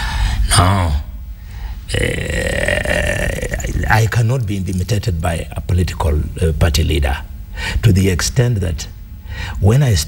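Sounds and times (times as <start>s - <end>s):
man's drawn-out hesitation: 1.9s - 8.8s
man speaking: 3.3s - 8.9s.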